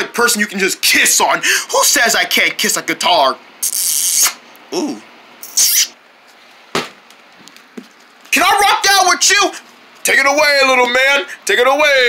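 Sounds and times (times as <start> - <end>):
sharp snap: 3.6 - 4.4.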